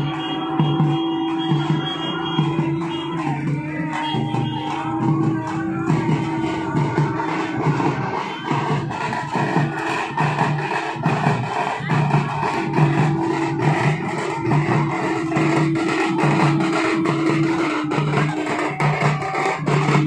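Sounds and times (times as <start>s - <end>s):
hand drums beating: 0.0s - 20.0s
held musical tone: 0.0s - 20.0s.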